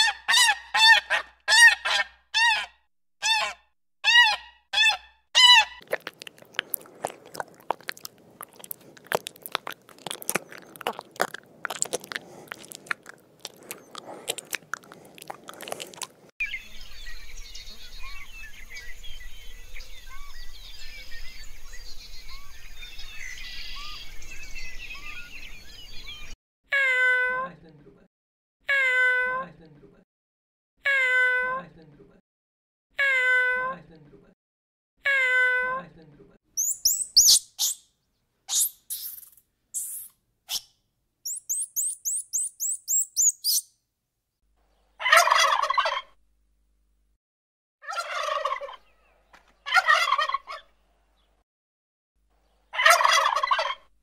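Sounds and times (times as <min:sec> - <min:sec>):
turkey gobbling: 0:00.0 - 0:05.8, 0:45.0 - 0:46.1, 0:47.8 - 0:48.9, 0:49.6 - 0:50.7, 0:52.7 - 0:53.9
quick high chirps: 0:36.6 - 0:37.8, 0:38.5 - 0:40.7, 0:41.3 - 0:43.7.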